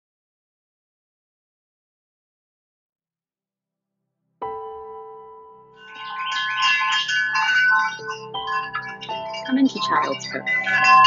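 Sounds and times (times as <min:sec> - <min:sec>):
ambient chime music: 0:04.6 - 0:11.0.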